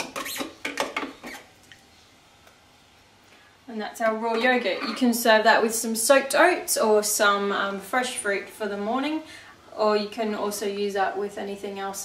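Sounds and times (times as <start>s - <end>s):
spoon scraping plastic bowl: 4.3s - 5.2s.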